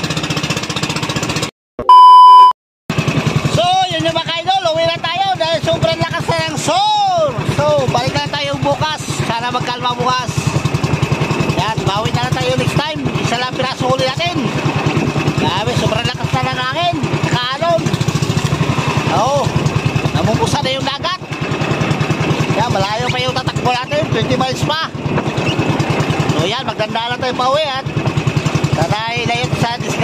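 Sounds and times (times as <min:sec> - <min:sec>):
boat engine running: 0:00.0 - 0:01.5, 0:02.9 - 0:30.0.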